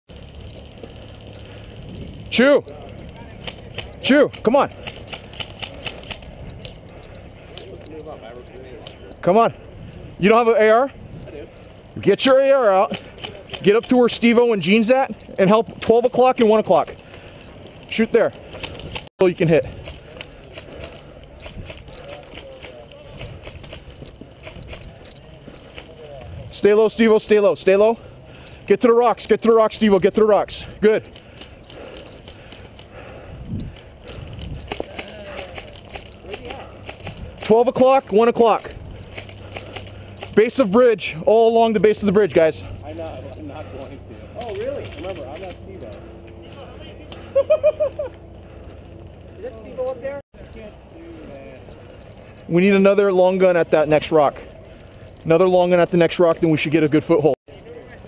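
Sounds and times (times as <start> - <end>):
steady low rumble: 0.1 - 3.8, 42.2 - 50.9
low outdoor rumble: 0.1 - 15.8, 29.8 - 58.0
airsoft guns firing clicks: 3.3 - 7.7, 19.8 - 25.0, 34.5 - 37.5, 39.0 - 40.6.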